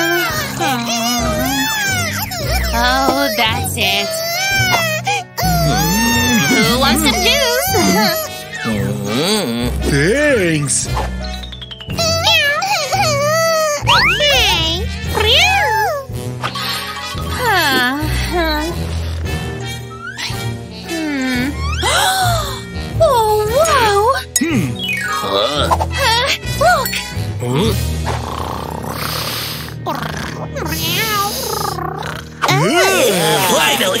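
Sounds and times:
background music: 0.0 - 34.0
cartoon cat meowing: 5.4 - 8.3, 12.0 - 14.4
cartoon cat purring: 28.1 - 32.7.

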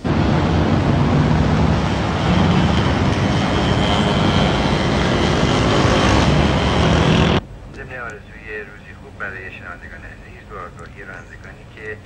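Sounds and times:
street traffic: 0.0 - 12.0.

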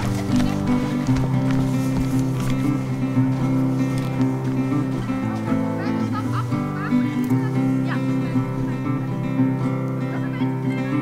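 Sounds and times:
music with held low notes: 0.0 - 11.0.

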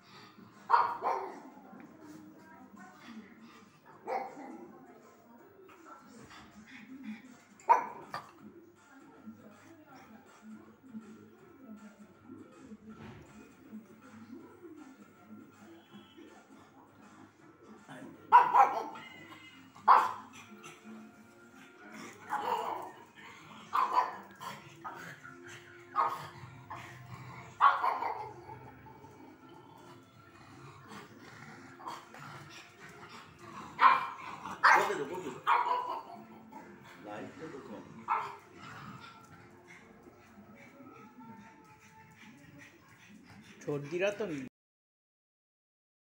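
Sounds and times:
faint television sound: 0.0 - 44.5
dog barking: 0.7 - 1.4, 4.0 - 4.6, 7.7 - 8.3, 18.3 - 19.1, 19.8 - 20.3, 22.3 - 23.0, 23.7 - 24.6, 25.9 - 26.4, 27.5 - 28.5, 33.7 - 36.3, 38.0 - 38.4.

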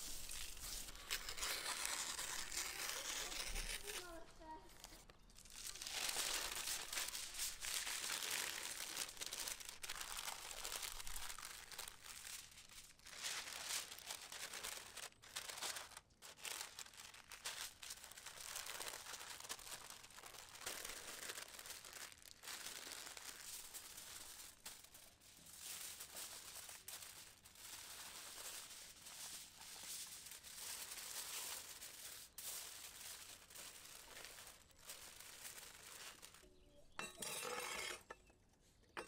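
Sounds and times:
paper and foil crinkling: 0.0 - 38.2.

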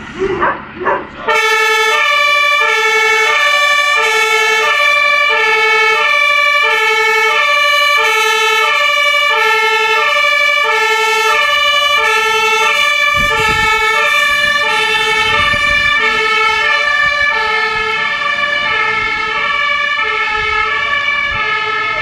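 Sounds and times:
two-tone fire engine siren: 1.2 - 22.0.

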